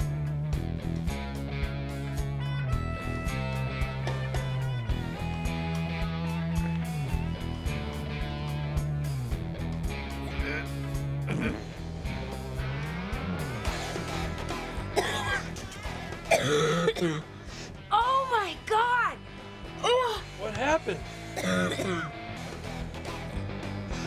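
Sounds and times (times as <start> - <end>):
background music with guitar: 0.0 - 24.0
person coughing: 10.4 - 11.7, 15.0 - 17.3, 21.4 - 22.2.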